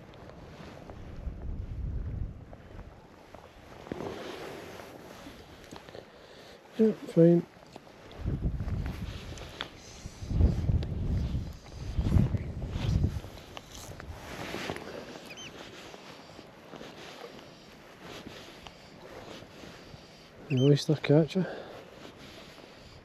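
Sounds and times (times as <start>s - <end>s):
wind gusting over microphone: 0.9s - 4.8s, 8.1s - 15.5s.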